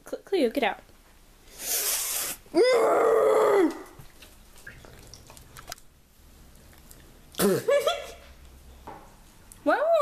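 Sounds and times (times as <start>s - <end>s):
brief hiss: 1.5s - 2.4s
drawn-out vocal cry: 2.5s - 4.0s.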